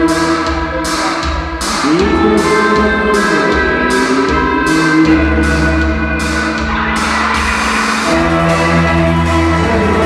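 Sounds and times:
live band playing chords: 0.0s - 10.0s.

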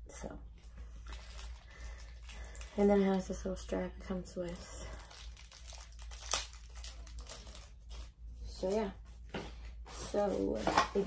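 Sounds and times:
plastic bag crinkling: 0.8s - 8.2s.

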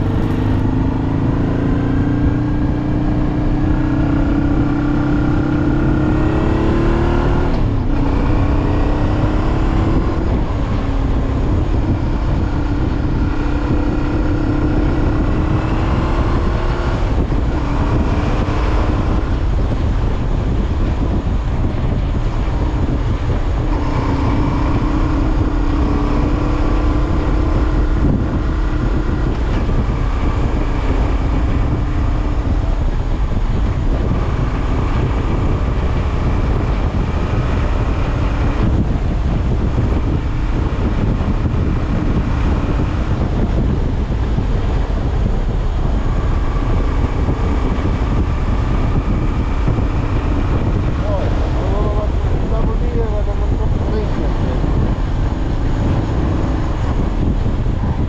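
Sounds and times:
motorcycle engine running: 0.0s - 58.0s
wind and road noise: 0.0s - 58.0s.

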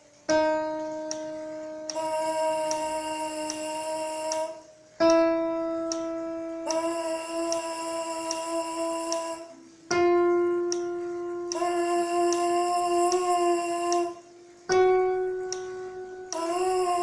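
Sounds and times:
piano notes: 0.0s - 17.0s.

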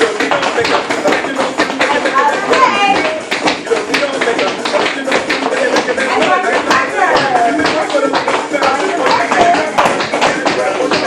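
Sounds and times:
tap shoes clicking on floor: 0.0s - 11.0s.

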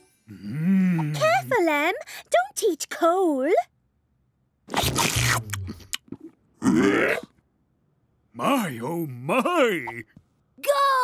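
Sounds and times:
deep crunching gulp: 4.7s - 7.3s.

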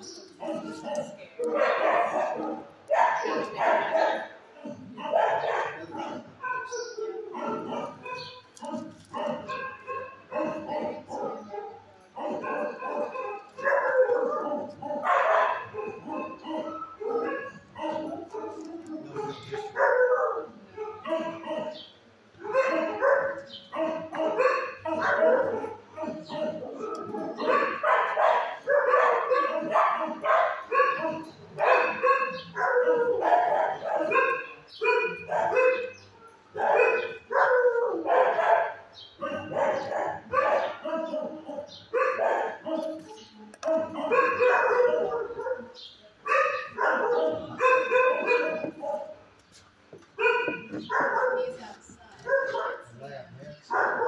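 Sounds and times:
dogs barking: 0.0s - 54.0s.

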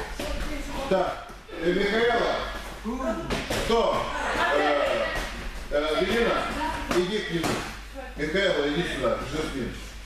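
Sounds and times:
voices talking in a hall: 0.0s - 10.0s.

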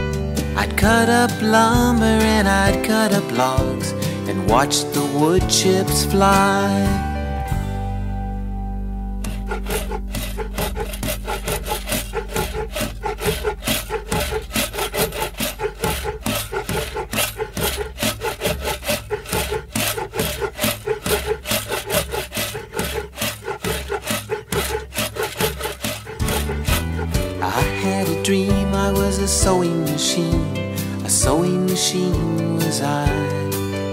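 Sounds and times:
backing music: 0.0s - 33.9s
saw cutting wood: 9.2s - 28.8s.

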